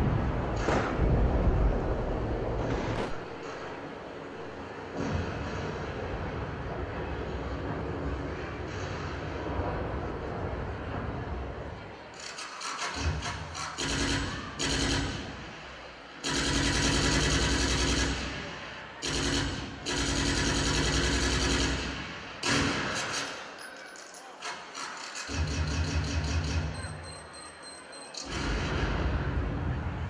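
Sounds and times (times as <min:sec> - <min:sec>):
machine-gun fire bursts: 0:03.0 - 0:03.8, 0:12.2 - 0:15.6, 0:16.2 - 0:23.4.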